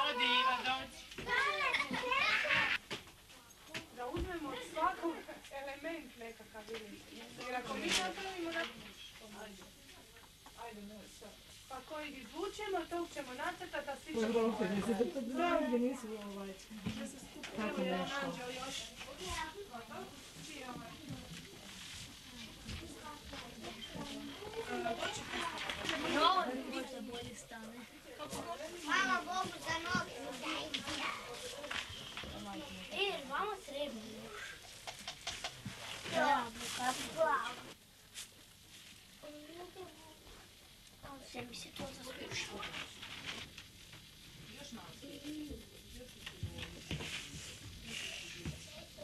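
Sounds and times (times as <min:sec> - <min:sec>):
faint indistinct voices: 0:00.0 - 0:38.3, 0:39.2 - 0:49.0
people talking quietly: 0:44.4 - 0:49.0.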